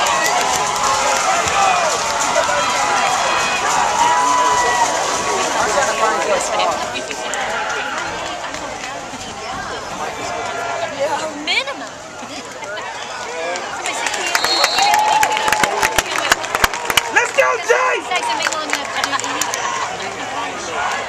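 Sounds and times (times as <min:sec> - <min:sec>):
crowd talking and shouting: 0:00.0 - 0:21.0.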